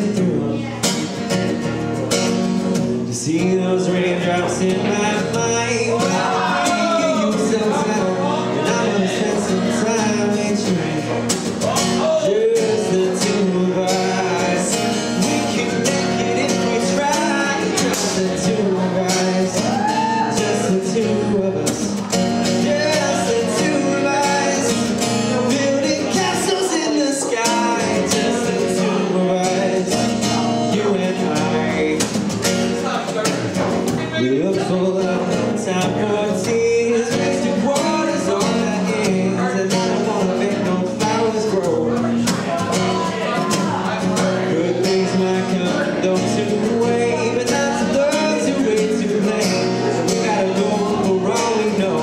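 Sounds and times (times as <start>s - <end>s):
man singing into microphone: 0.0s - 1.0s, 3.0s - 52.0s
acoustic guitar strumming: 0.0s - 52.0s.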